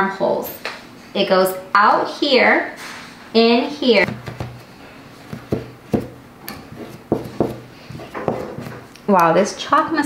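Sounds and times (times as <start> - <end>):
knocks handling cardboard box: 4.0 - 8.9.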